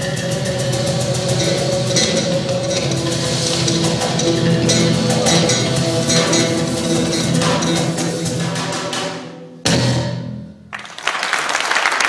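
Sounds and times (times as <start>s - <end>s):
oud notes: 0.0s - 10.7s
rapid drumming: 0.0s - 12.0s.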